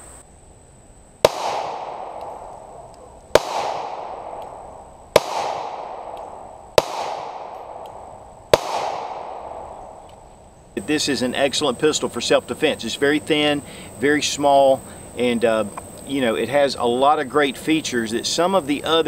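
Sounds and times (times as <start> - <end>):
pistol shots with long echo: 1.2 - 10.0.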